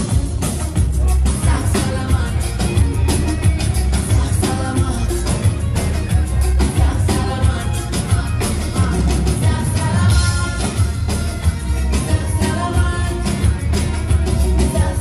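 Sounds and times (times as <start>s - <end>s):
live band music: 0.0s - 15.0s
woman singing: 6.6s - 11.2s, 11.9s - 13.8s.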